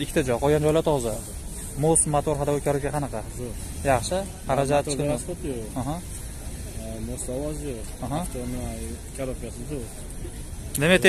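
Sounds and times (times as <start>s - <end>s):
background hiss and rumble: 0.0s - 11.0s
men talking: 0.0s - 11.0s.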